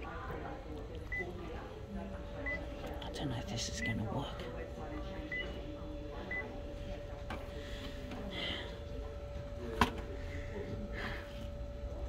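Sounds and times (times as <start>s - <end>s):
photocopier hum: 0.0s - 12.0s.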